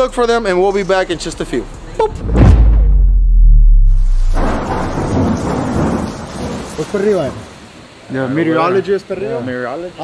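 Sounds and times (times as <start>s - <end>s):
low thunder rumble: 2.1s - 6.8s
steady rain: 4.1s - 10.0s.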